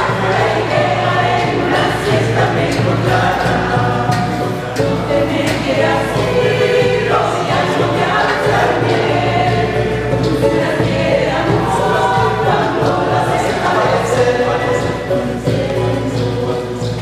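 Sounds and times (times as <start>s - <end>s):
mixed choir singing in harmony: 0.0s - 17.0s.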